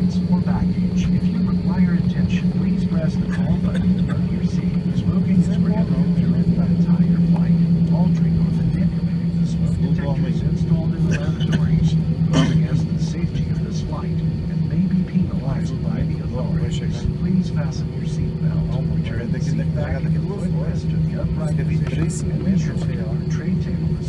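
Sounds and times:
aircraft cabin engine hum: 0:00.0 - 0:24.0
indistinct voices: 0:00.0 - 0:24.0.

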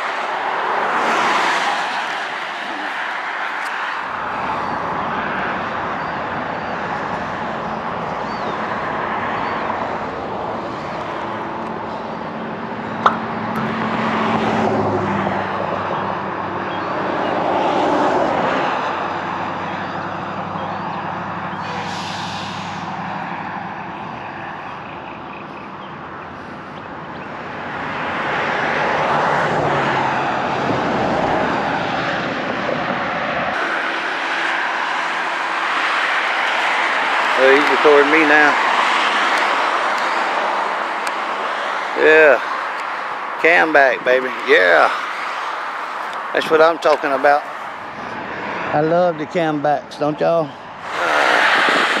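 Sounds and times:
passing vehicle engine hum: 0:00.0 - 0:52.0.

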